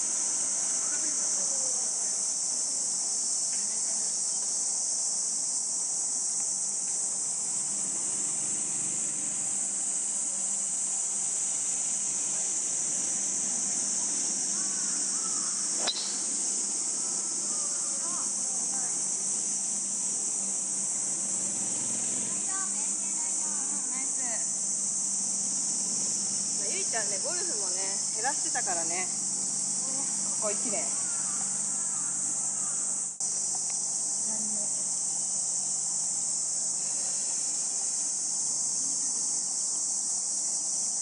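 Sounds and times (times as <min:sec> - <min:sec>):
insects shrilling: 0:00.0 - 0:41.0
sharp click: 0:15.8 - 0:16.2.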